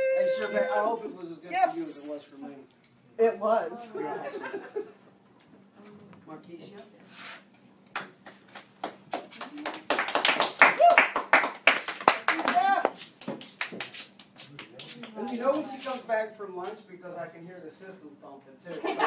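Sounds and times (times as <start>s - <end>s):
voices: 0.0s - 2.3s
small group clapping: 7.9s - 16.0s.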